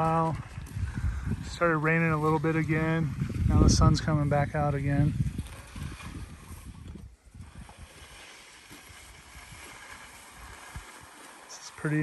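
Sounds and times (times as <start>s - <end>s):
outdoor background noise: 0.0s - 12.0s
wind buffeting microphone: 0.0s - 12.0s.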